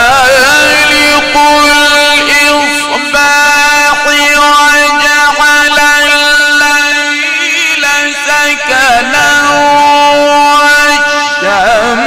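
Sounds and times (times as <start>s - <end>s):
man reciting a long held note: 0.0s - 12.0s.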